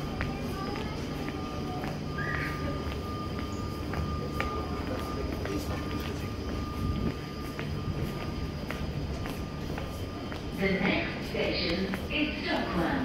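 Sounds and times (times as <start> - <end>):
footsteps on platform: 0.0 - 13.0
thin steady whine: 0.0 - 13.0
train equipment hum: 0.0 - 13.0.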